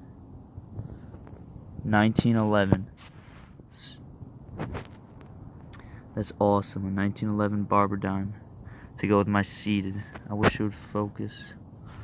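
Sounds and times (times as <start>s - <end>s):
low steady hum: 0.0s - 12.0s
faint rustles and ticks: 0.7s - 3.6s, 4.4s - 5.8s.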